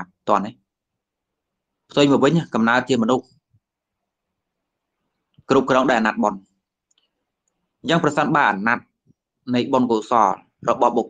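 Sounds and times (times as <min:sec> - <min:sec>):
man preaching: 0:01.9 - 0:03.3, 0:05.5 - 0:06.5, 0:07.8 - 0:08.9, 0:09.5 - 0:11.0.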